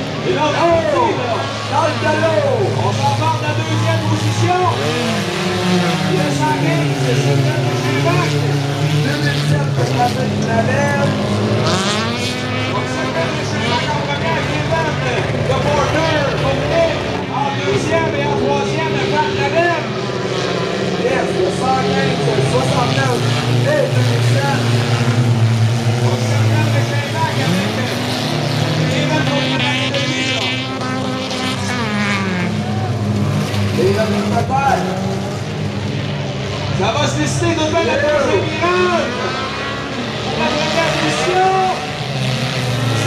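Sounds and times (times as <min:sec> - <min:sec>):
race car engines revving: 0:00.0 - 0:43.0.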